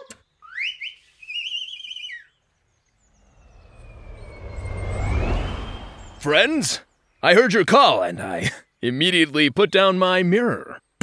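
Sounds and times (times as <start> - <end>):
warbling whistle trill: 0.4 - 2.4, 3.0 - 6.9
rising whistle toots: 0.4 - 7.1
thin gliding whistle tone: 0.4 - 7.2
whoosh with deep rumble: 2.9 - 7.2.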